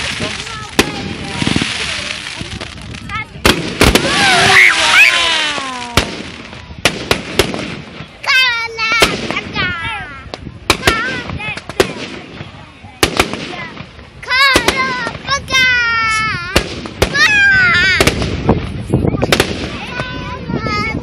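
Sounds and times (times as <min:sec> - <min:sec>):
fireworks bursting: 0:00.0 - 0:21.0
high-pitched voices crying out: 0:04.0 - 0:06.0.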